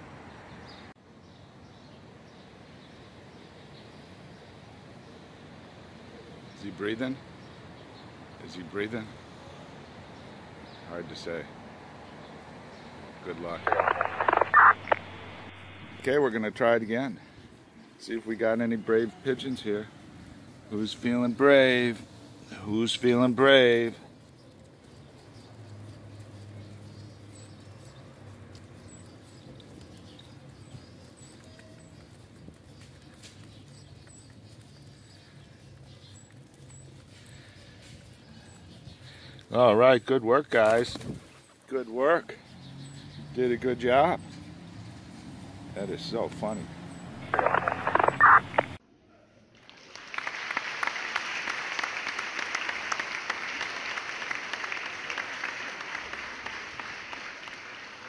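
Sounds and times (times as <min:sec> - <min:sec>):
crowd clapping: 0:49.6 - 0:58.0.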